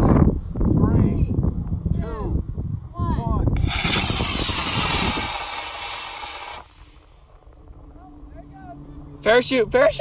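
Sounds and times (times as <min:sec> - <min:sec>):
model rocket motor hissing: 0:03.6 - 0:07.1.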